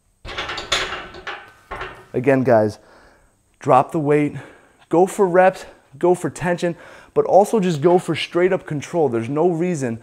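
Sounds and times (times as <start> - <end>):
barbell knocking on metal rack: 0.3 - 2.1.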